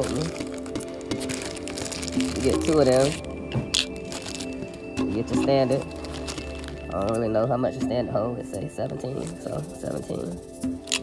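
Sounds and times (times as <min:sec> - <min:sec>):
background music: 0:00.0 - 0:11.0
plastic bag crinkling: 0:00.0 - 0:11.0.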